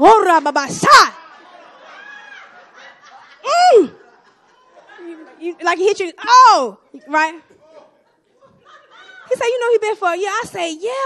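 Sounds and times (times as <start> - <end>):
woman's excited wordless cries: 3.4 - 4.2.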